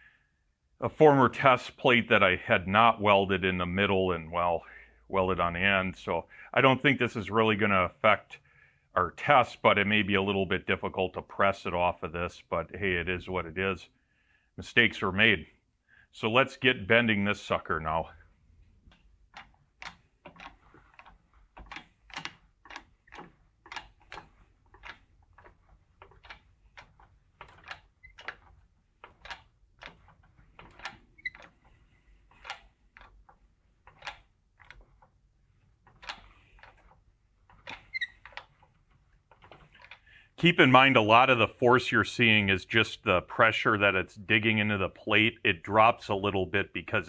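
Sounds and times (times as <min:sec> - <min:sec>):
faint irregular clicks and ticks: 0:16.9 - 0:41.4.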